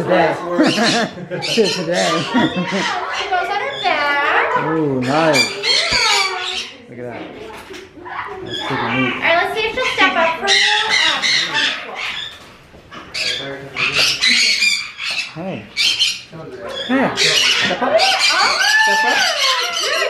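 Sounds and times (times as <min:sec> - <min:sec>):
macaw squawking: 0:05.0 - 0:06.8, 0:10.3 - 0:12.4, 0:13.0 - 0:20.0.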